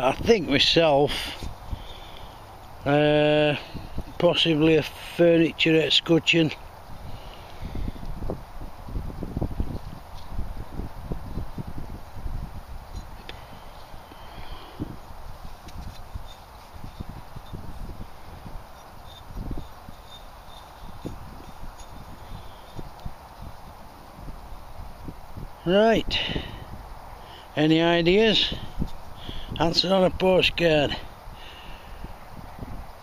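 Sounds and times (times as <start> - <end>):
wind buffeting microphone: 0.0 - 5.1, 6.5 - 33.0
steady outdoor hiss: 0.0 - 33.0.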